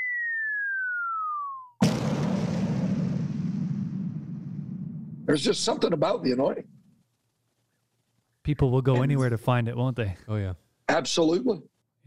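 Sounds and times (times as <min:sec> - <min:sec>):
deep cinematic boom: 0:01.8 - 0:05.5.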